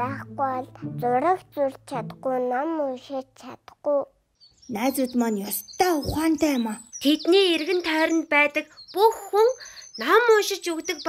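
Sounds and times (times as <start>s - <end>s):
high-pitched cartoon character voice: 0.0s - 4.1s.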